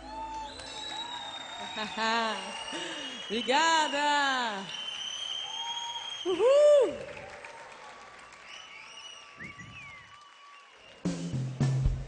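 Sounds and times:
high gliding whistles: 0.3 - 1.8, 4.7 - 6.6.

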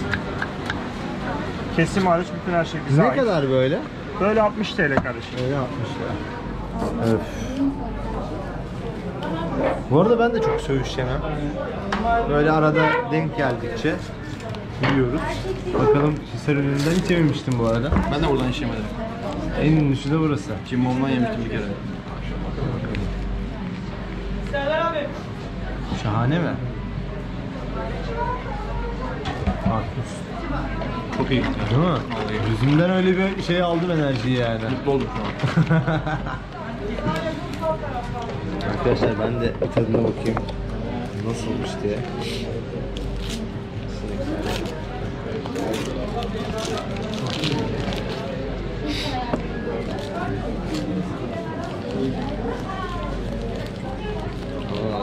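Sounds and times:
diners chattering: 0.0 - 55.0
paper wrapping crinkling: 43.0 - 48.5, 49.8 - 55.0.

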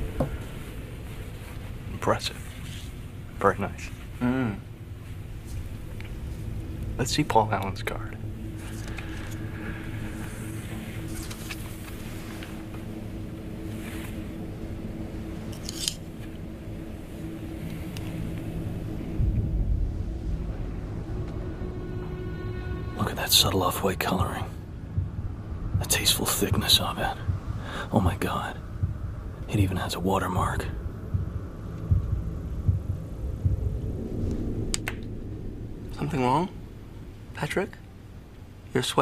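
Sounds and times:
heartbeat-like throb: 0.0 - 3.4, 4.2 - 37.3
deep low rumble: 0.0 - 38.6
dark steady drone: 0.0 - 39.0
low steady hum: 0.0 - 39.0.

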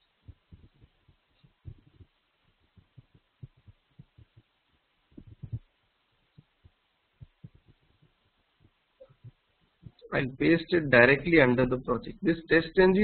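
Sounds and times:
low thumps: 5.1 - 5.7.

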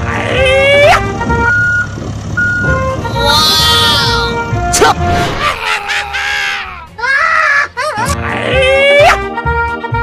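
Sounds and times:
heavy vehicle engine rumbling: 0.0 - 7.0
background music: 0.0 - 10.0.

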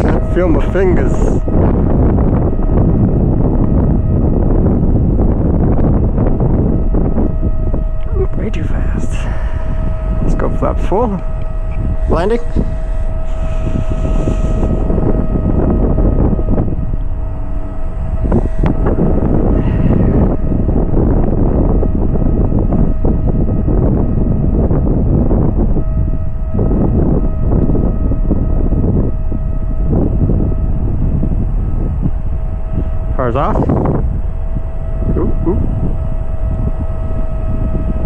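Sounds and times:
high-pitched hum: 0.0 - 38.0
wind buffeting microphone: 0.0 - 38.0.

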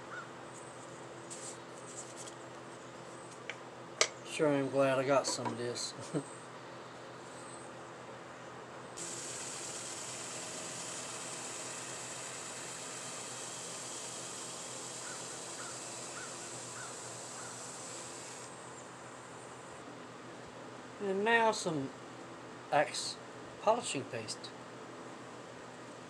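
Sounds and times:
wood lathe running: 9.0 - 18.5.

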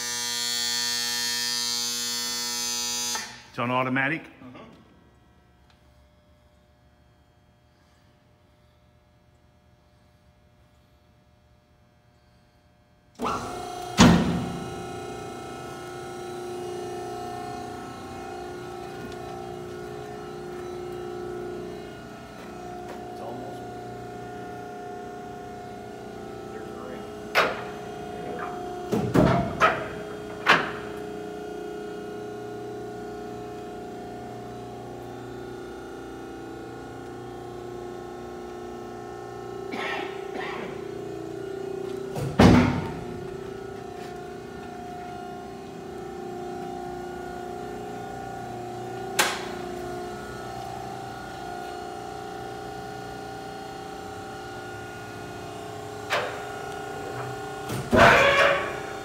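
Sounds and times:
electric motor and pump hum: 0.0 - 59.0.

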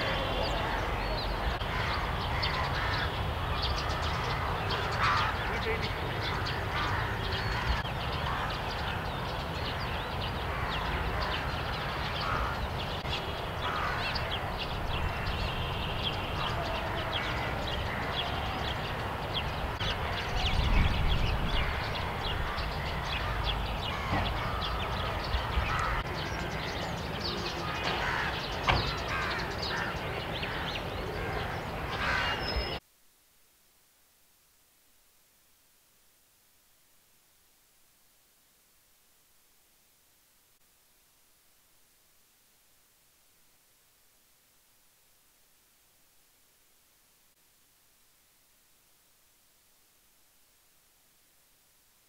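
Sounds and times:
crows cawing: 0.0 - 9.0, 9.7 - 12.8, 13.6 - 15.4, 16.4 - 18.7, 21.5 - 26.9, 27.5 - 32.6.

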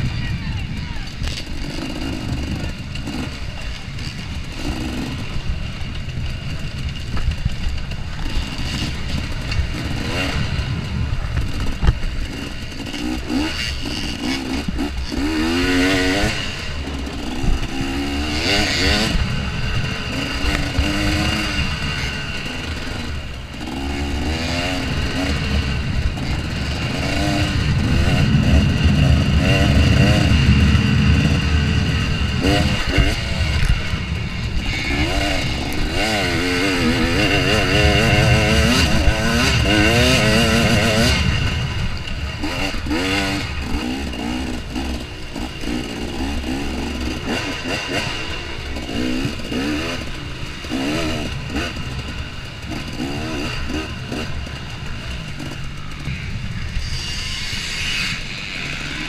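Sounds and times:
dirt bike engine revving: 0.0 - 59.0
heavy low rumble: 0.0 - 59.0.

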